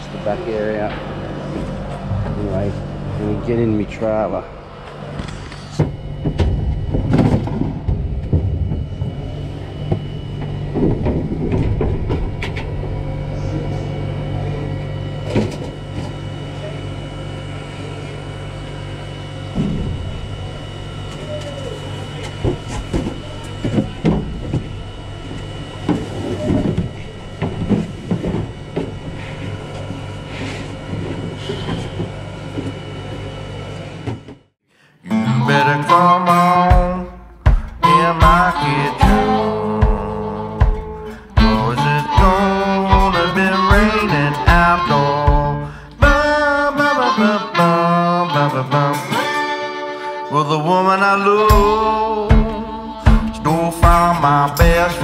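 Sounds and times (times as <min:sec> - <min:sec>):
steady mechanical hum: 0:00.0 - 0:55.0
acoustic guitar music: 0:35.0 - 0:55.0.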